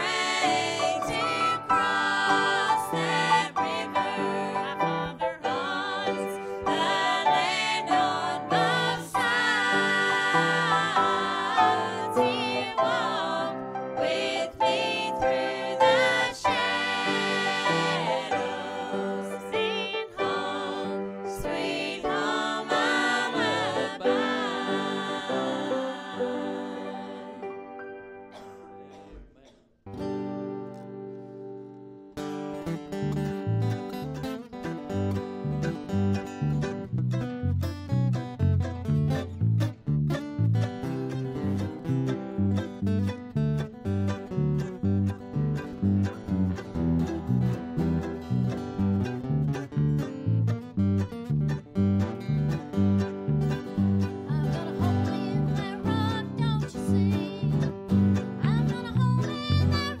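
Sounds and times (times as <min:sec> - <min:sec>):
acoustic country band playing: 0:00.0 - 0:29.1, 0:29.9 - 1:00.0.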